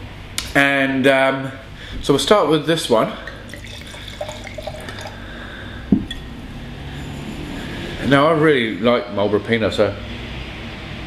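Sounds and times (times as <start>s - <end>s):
wine pouring into a glass: 3.0s - 5.3s.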